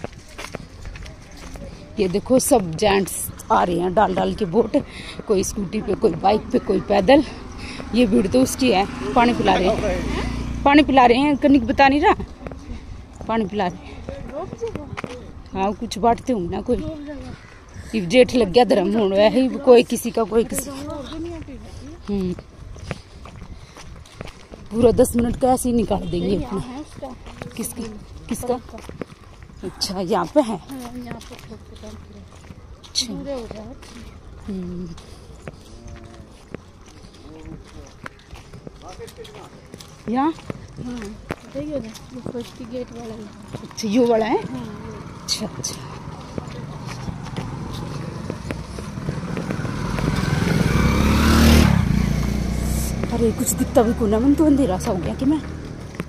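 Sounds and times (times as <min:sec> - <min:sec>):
footsteps on dirt road: 0:00.0 - 0:56.0
person speaking: 0:01.5 - 0:22.5, 0:24.7 - 0:28.8, 0:52.5 - 0:55.4
small motorcycle engine passing: 0:06.2 - 0:13.2, 0:44.2 - 0:56.0.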